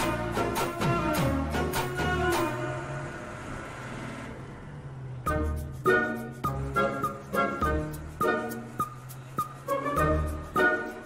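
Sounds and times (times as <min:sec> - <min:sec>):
bus running noise: 0:00.0 - 0:11.0.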